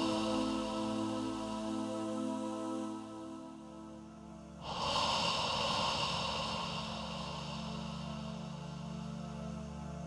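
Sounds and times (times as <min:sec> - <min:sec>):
breathy hissing swell: 0:00.0 - 0:10.0
sustained synthesizer pad chord: 0:00.0 - 0:10.0.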